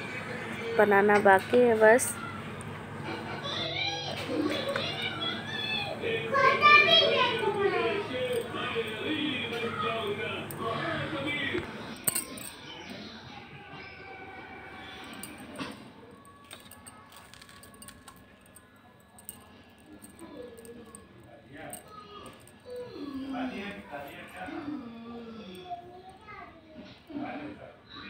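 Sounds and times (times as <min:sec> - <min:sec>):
faint background voices: 0:00.0 - 0:28.0.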